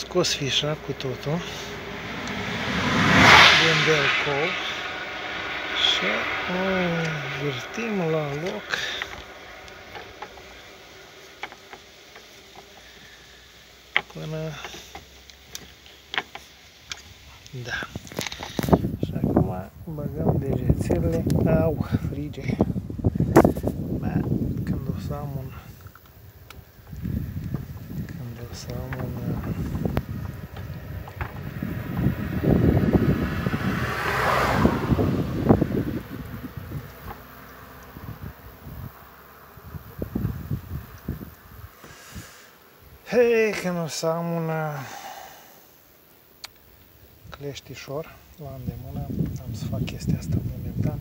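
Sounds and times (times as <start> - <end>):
wind on microphone: 0.0 - 12.3, 17.0 - 43.0, 48.4 - 51.0
small car engine running: 0.2 - 16.4
microphone handling noise: 20.3 - 25.1, 25.7 - 33.1.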